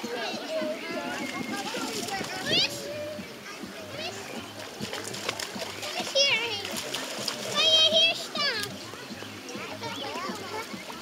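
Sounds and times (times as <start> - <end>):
splashing in water: 0.8 - 3.2, 4.0 - 11.0.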